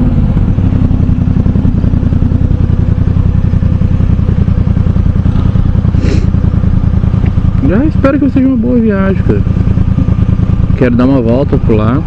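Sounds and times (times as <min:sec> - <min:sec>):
motorcycle engine running at low revs: 0:00.0 - 0:12.0.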